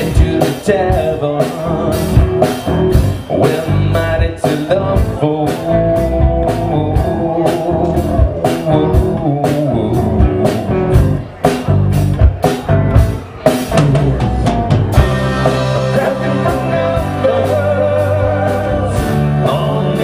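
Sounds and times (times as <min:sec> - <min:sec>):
rock band playing: 0:00.0 - 0:20.0.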